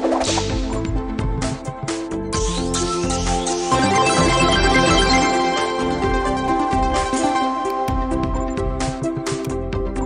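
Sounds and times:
looping game music: 0.6 - 10.0.

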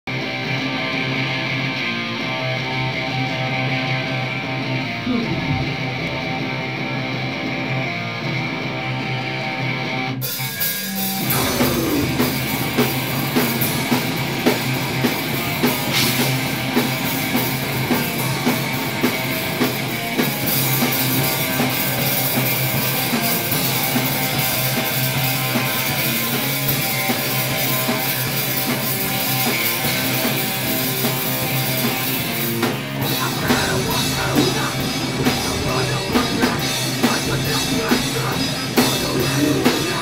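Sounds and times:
electric bass: 0.0 - 40.0
electric guitar droning chords: 0.1 - 28.3, 29.1 - 40.0
drum kit steady beat: 10.2 - 40.0.

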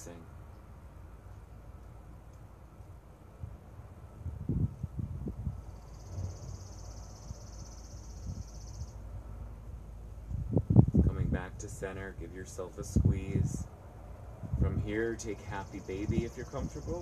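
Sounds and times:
low rumbling microphone bursts: 0.0 - 17.0.

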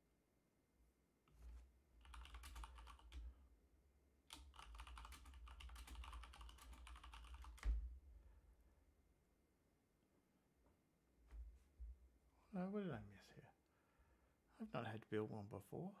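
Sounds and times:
computer keyboard typing: 2.0 - 3.3, 4.3 - 7.8.

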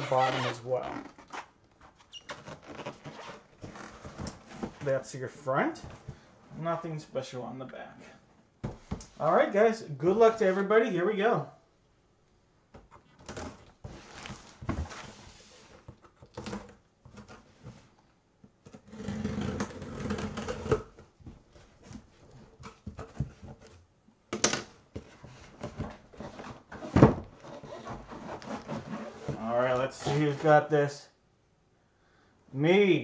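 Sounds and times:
cardboard scraping and rustling: 0.0 - 4.9, 13.0 - 17.9, 25.0 - 30.7.

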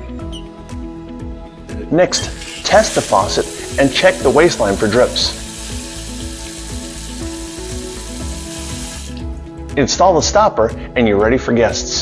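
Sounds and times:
tap water running into sink: 2.1 - 9.4.

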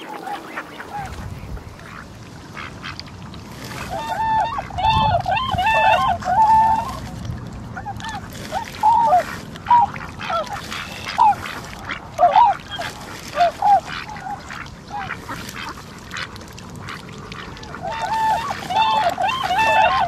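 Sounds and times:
swans honking: 0.0 - 3.0, 3.6 - 20.0.

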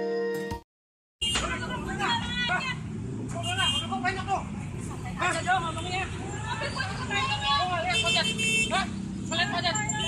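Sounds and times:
road traffic: 1.2 - 10.0
people talking: 3.4 - 10.0.

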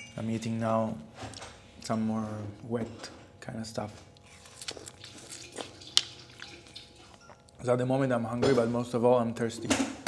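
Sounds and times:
person chewing watermelon: 4.0 - 7.6.

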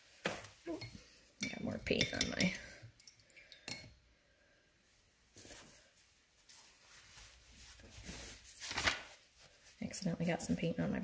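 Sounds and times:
paintbrush rubbing on paper towel: 5.4 - 10.4.

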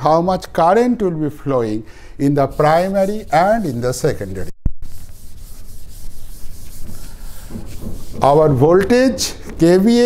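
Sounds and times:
cloth scrubbing chalkboard: 2.3 - 10.0.

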